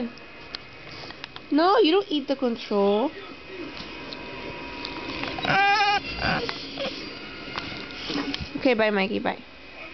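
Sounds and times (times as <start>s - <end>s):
dog howling: 5.2s - 7.0s.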